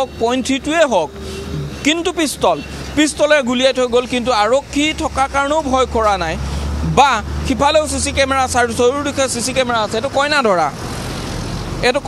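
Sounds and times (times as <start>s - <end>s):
road traffic rushing: 0.0s - 12.0s.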